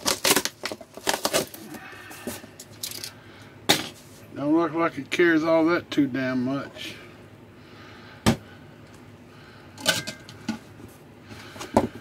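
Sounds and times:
clicks and knocks of items in box: 0.0s - 3.1s.

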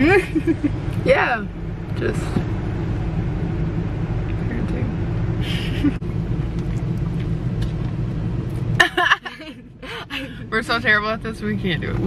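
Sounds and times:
car engine humming: 0.0s - 12.0s.

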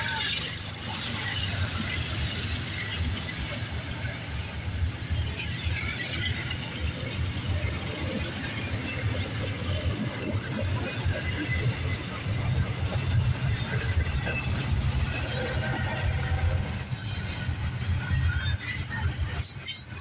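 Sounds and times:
train wheels rumbling on rails: 0.0s - 20.0s.

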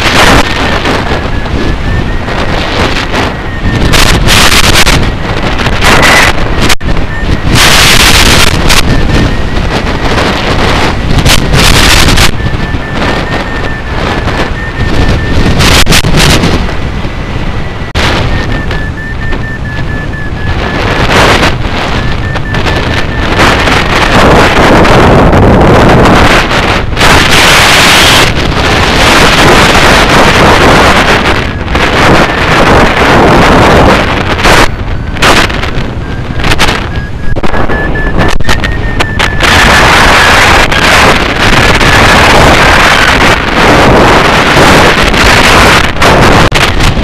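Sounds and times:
wind rushing over microphone: 0.0s - 47.0s
faint high wavering tone: 11.3s - 16.0s, 16.8s - 21.1s, 21.8s - 24.3s, 36.0s - 40.2s.

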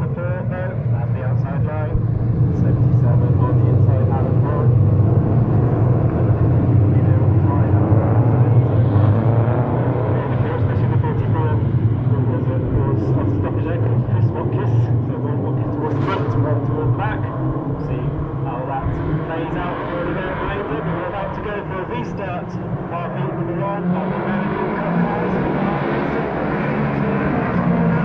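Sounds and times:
race car engines droning: 0.0s - 28.0s.

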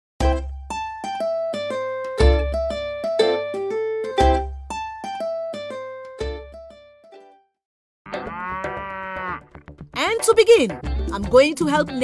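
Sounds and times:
cow mooing: 8.1s - 9.5s.

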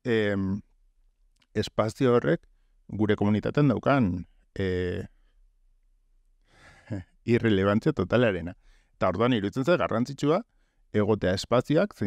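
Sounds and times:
man speaking: 0.0s - 0.6s, 1.6s - 5.1s, 6.9s - 10.4s, 11.0s - 12.0s
man breathing in sharply: 6.4s - 6.9s, 8.6s - 9.0s.

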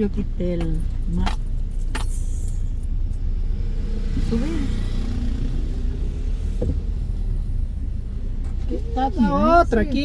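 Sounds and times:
car driving rumble inside cabin: 0.0s - 10.0s.

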